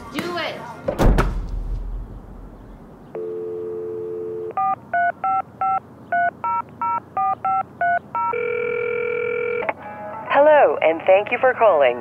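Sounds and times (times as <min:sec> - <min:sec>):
touch-tone beeps: 0:03.1 - 0:09.6
long steady phone tone: 0:03.1 - 0:09.7
telephone dial tone: 0:03.2 - 0:09.8.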